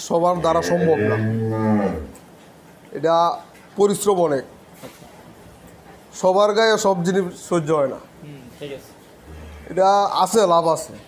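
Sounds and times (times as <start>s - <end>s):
cow mooing: 0.4s - 2.2s.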